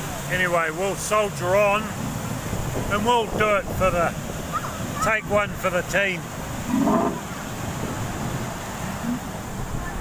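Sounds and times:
waves breaking on beach: 0.0 - 10.0.

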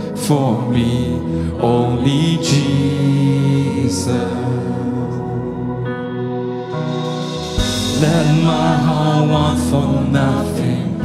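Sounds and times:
man singing lead vocal: 0.0 - 6.0, 7.6 - 11.0
band accompaniment: 6.0 - 10.8.

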